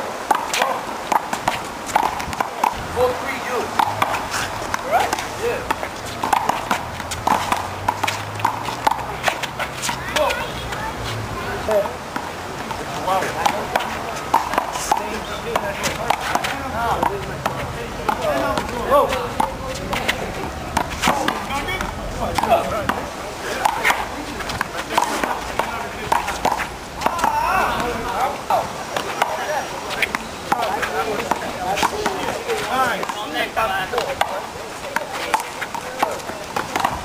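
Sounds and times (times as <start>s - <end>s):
voices talking and calling out: 0.0s - 37.0s
ball hitting concrete wall: 0.2s - 10.4s, 11.7s - 37.0s.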